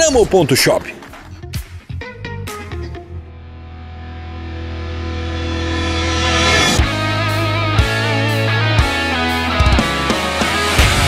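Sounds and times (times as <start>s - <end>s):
distorted electric guitar chord: 3.2s - 11.0s.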